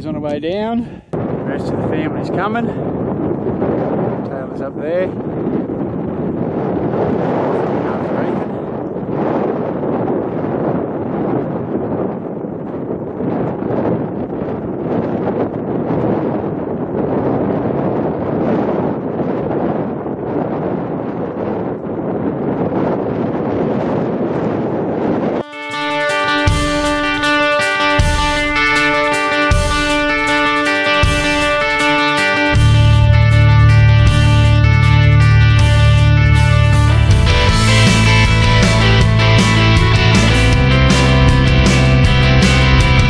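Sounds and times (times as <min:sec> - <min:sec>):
wind buffeting microphone: 0:00.0 - 0:43.0
guitar music: 0:25.4 - 0:43.0.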